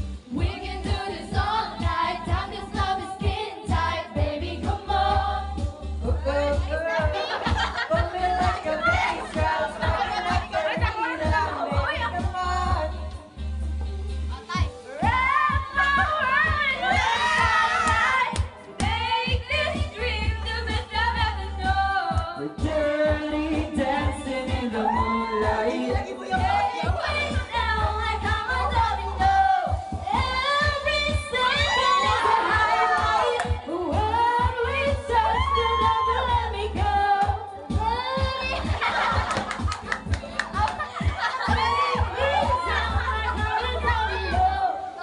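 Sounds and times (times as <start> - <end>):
karaoke backing track with beat: 0.0 - 45.0
woman singing into microphone: 0.3 - 13.0, 15.0 - 39.6, 41.3 - 45.0
group cheering and shouting: 4.0 - 13.0, 14.3 - 22.0, 22.6 - 45.0.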